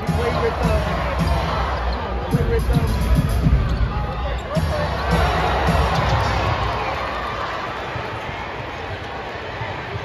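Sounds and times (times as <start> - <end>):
arena crowd noise with voices: 0.0 - 10.0.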